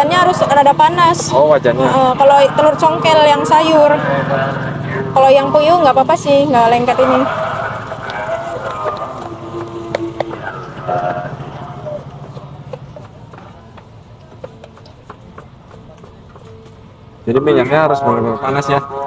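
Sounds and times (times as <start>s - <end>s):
background voices: 1.2s - 14.4s.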